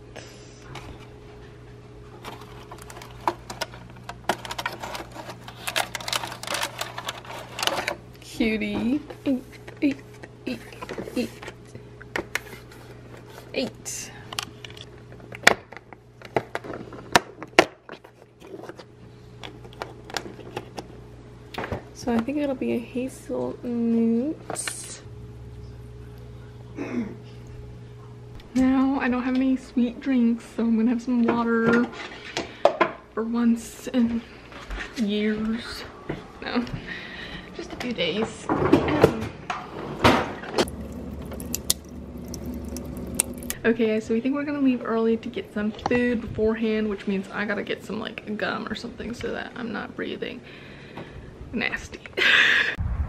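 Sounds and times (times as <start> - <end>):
plastic tray crackling: 2.2 - 7.9
water dispenser humming: 40.4 - 44.0
water pouring into plastic cup: 40.6 - 43.6.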